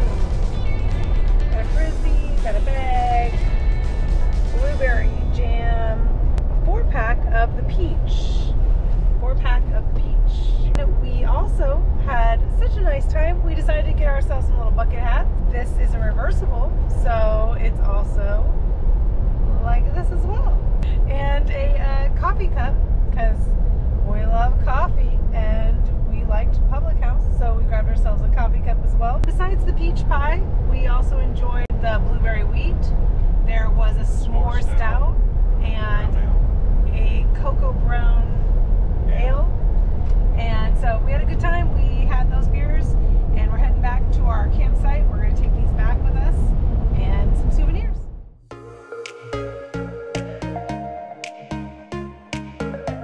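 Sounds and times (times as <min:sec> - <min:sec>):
road and engine rumble in cabin: 0:00.0 - 0:48.4.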